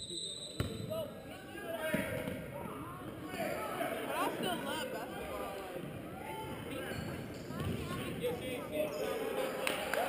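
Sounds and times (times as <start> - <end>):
spectators talking: 0.8 - 10.0.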